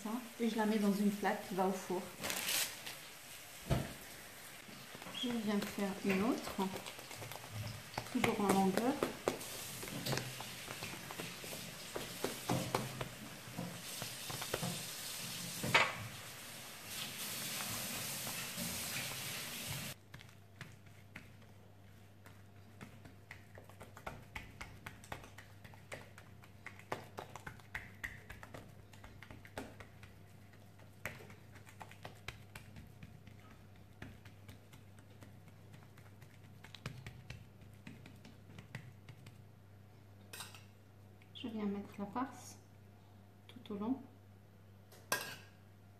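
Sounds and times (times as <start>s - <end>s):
hands patting dough: 4.6s - 15.7s, 19.9s - 39.8s.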